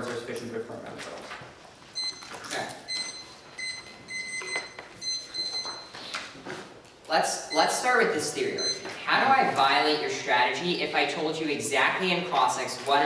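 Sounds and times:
electronic timer beeping: 2.0s - 2.3s, 2.9s - 6.0s, 7.4s - 9.0s.

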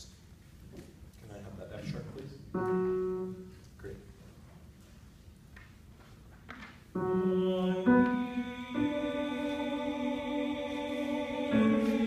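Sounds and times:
tenors singing: 7.0s - 12.0s.

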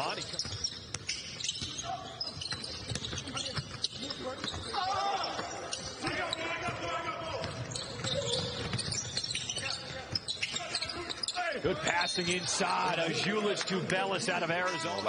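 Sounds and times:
sneakers squeaking: 0.0s - 12.9s.

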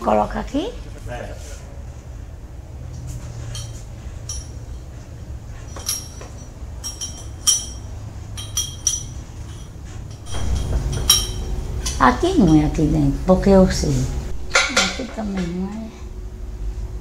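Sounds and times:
metal clinks: 3.2s - 13.0s.

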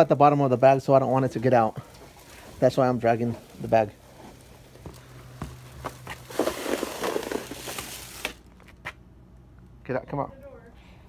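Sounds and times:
footsteps: 0.0s - 9.0s
plastic bag dragged across floor: 2.0s - 8.4s.

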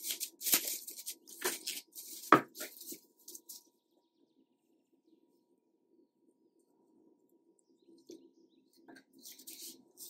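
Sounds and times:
cling film crinkling: 0.0s - 3.6s.

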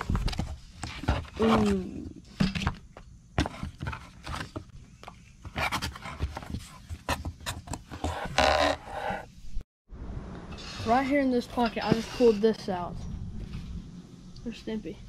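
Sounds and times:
cardboard and foam rustling: 0.0s - 2.8s, 5.3s - 9.3s.

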